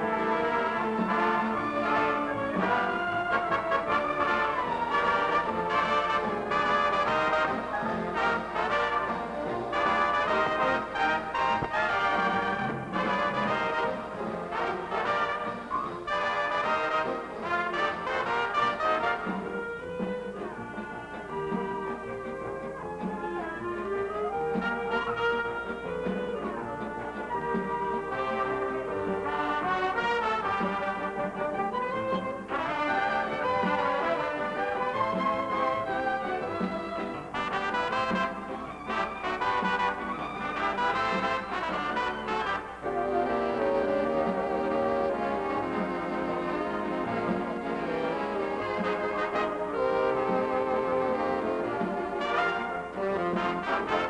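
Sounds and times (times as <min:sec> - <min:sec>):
brass-led orchestra dance music: 0:00.0 - 0:54.0.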